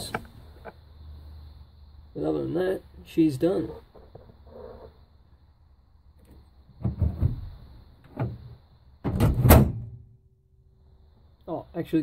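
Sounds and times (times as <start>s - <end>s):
tailgate latch clunking: 8.1s - 10.0s.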